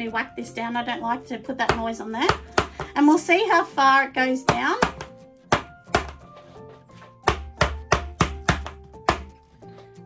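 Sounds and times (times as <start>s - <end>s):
background music: 0.0s - 10.0s
jar knocking on bench: 4.5s - 6.2s, 7.3s - 9.3s.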